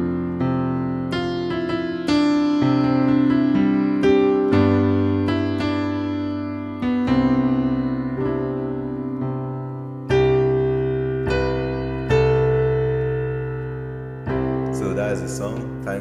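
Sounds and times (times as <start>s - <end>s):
keyboard piano chords: 0.0s - 16.0s.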